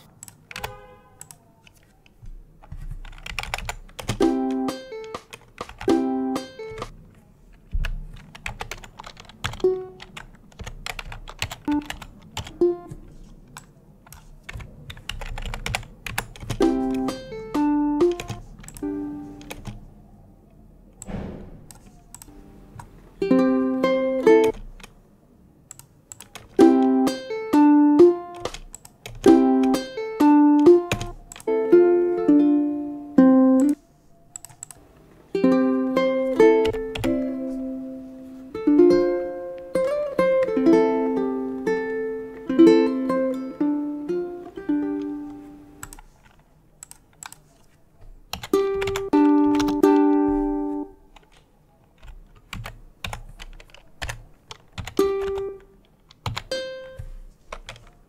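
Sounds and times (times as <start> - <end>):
computer keyboard clicks: 0.0 - 4.2, 4.8 - 7.0, 7.8 - 12.6, 13.5 - 19.8, 25.7 - 26.6, 28.3 - 29.8, 30.9 - 31.5, 33.6 - 34.8, 45.8 - 47.5, 48.3 - 50.2, 51.1 - 56.6, 57.5 - 58.0
fingerpicked ukulele: 4.1 - 6.9, 12.5 - 13.2, 16.6 - 19.5, 23.2 - 24.5, 26.6 - 28.5, 29.2 - 33.8, 35.3 - 45.8, 48.5 - 51.0, 55.0 - 55.6, 56.5 - 57.3.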